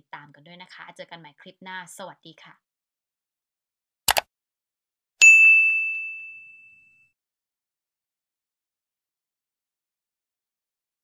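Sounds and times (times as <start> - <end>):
mouse click sound effects: 4.1 - 4.3
bell ding: 5.2 - 7.1.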